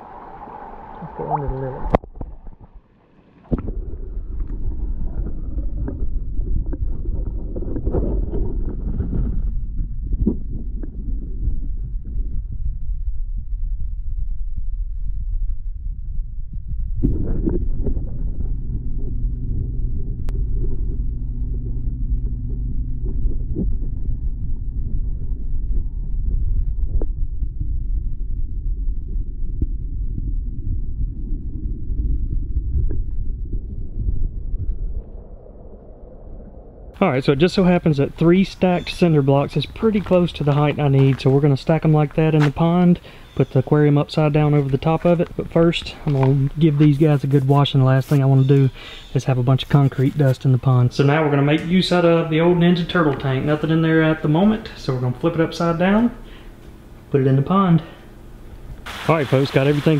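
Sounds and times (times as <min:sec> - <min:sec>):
muffled underwater rumble: 0:00.0 - 0:59.9
steady low hum: 0:00.0 - 0:59.9.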